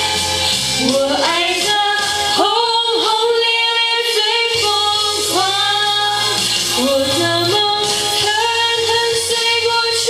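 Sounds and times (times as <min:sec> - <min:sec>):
backing track: 0:00.0 - 0:10.0
woman singing pop ballad: 0:00.0 - 0:10.0.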